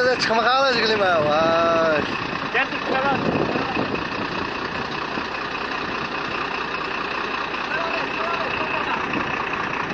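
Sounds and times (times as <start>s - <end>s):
vehicle rumbling from inside cab: 0.0s - 9.9s.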